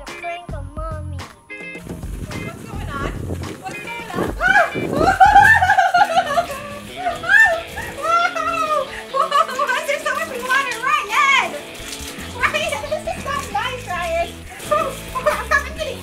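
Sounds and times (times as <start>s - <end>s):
background music: 0.0s - 16.0s
child squealing: 4.1s - 5.8s
woman crying out: 4.2s - 9.6s.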